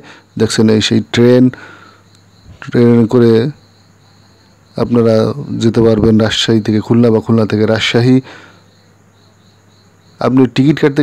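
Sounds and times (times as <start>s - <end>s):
person speaking: 4.8s - 8.4s.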